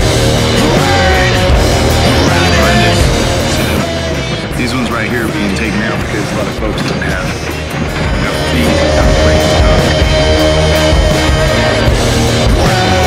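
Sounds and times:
heavy rock music: 0.0s - 13.0s
person singing: 0.1s - 13.0s.

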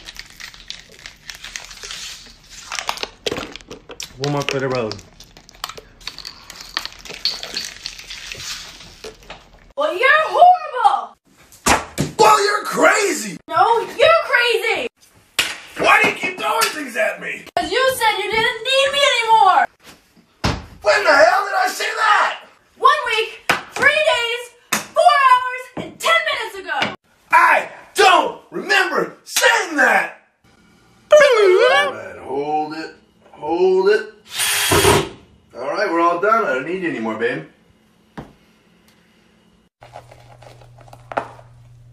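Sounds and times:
cordless power drill burst: 34.3s - 35.1s.

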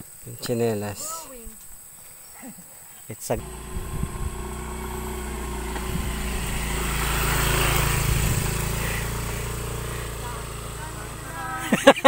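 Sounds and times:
motor scooter passing by: 3.4s - 12.0s.

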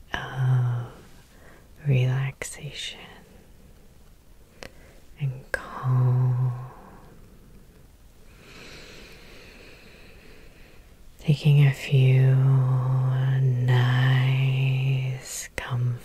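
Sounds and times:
faint breathy whisper: 0.0s - 3.6s, 4.5s - 7.7s
woman humming softly: 0.1s - 1.1s, 5.2s - 7.2s.

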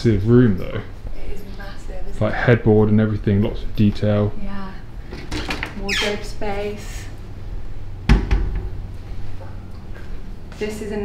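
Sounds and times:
cupboard door thud: 8.1s - 8.8s.

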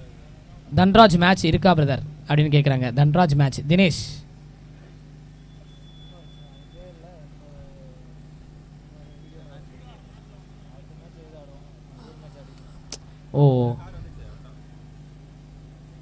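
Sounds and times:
steady low hum: 0.0s - 16.0s
distant voices: 3.8s - 15.7s.

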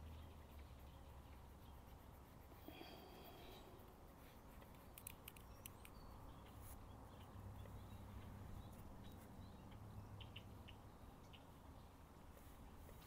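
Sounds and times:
small sharp clicks: 4.6s - 6.6s
faint high chirp: 4.8s - 11.5s.

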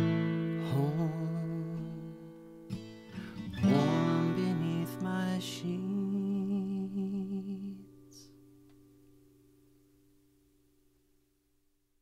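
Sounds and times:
acoustic guitar chord ringing: 0.0s - 11.2s.

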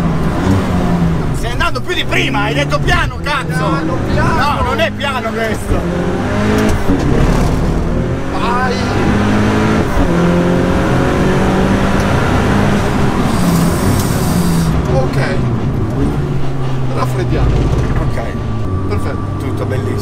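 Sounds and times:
car engine revving inside cabin: 0.0s - 20.0s.

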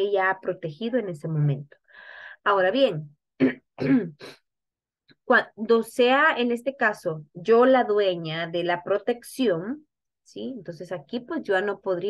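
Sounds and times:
woman clearing her throat: 3.4s - 4.3s.

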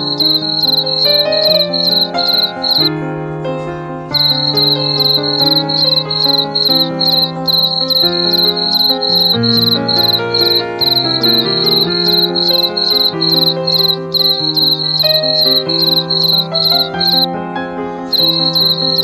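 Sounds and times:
cricket chirping: 0.0s - 2.9s, 4.1s - 17.3s, 18.1s - 19.0s
soft background music: 0.0s - 19.0s.

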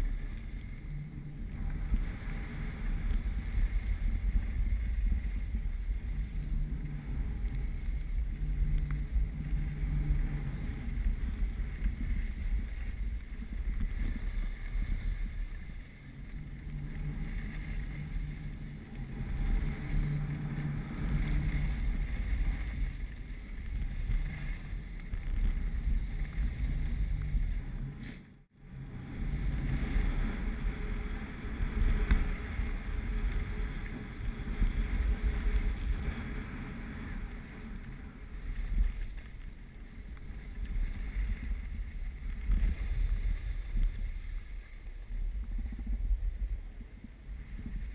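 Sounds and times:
skis sliding over snow: 0.0s - 47.9s
wind buffeting microphone: 0.0s - 47.9s.

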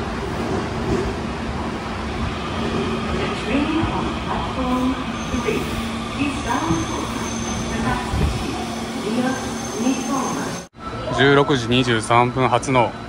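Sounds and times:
subway train rumbling: 0.0s - 13.0s.

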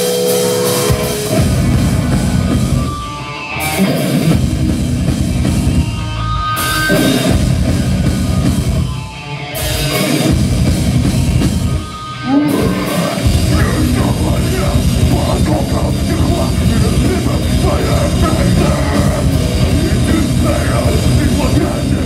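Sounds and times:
metal band playing heavy riff: 0.0s - 22.0s.

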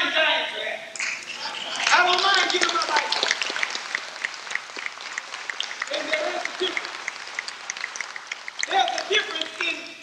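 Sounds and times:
audience applauding: 1.0s - 10.0s.

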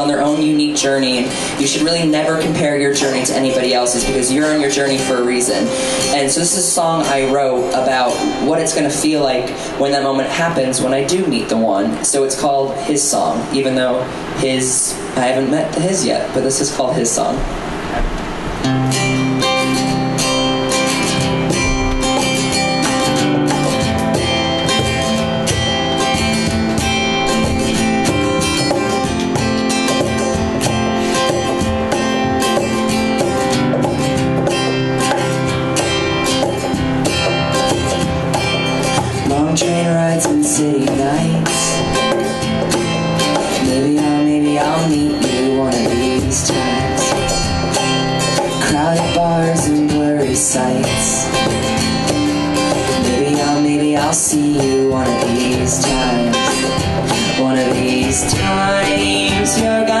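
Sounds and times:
man singing: 0.0s - 17.4s, 39.1s - 42.3s, 43.4s - 47.4s, 48.6s - 51.8s, 53.0s - 60.0s
cajon beat: 0.0s - 60.0s
strummed acoustic guitar: 0.0s - 60.0s.

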